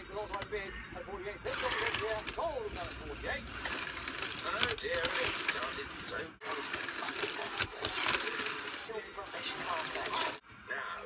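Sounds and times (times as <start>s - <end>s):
model train coach clattering: 0.0s - 10.4s
television speech: 0.0s - 11.0s.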